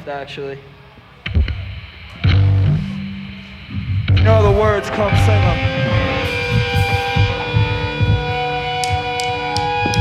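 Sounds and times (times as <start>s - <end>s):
amplifier hum: 1.2s - 10.0s
electric guitar chord ringing: 2.2s - 10.0s
low drum thumps: 3.8s - 10.0s
cymbal or stick ticks: 8.6s - 10.0s.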